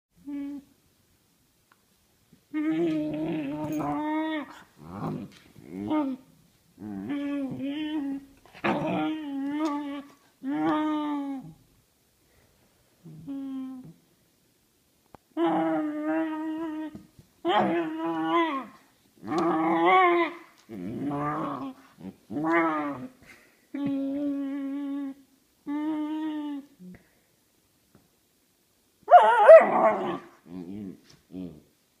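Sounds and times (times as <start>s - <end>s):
puppy grumbling vocalizations: 2.6s - 11.6s, 15.4s - 23.2s
puppy warbling cry: 17.5s - 23.1s, 29.1s - 30.9s.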